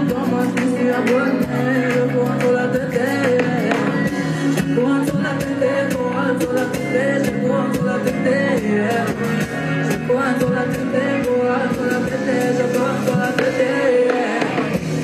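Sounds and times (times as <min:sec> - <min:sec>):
band with steady beat: 0:00.0 - 0:15.0
woman singing into a microphone: 0:00.0 - 0:15.0.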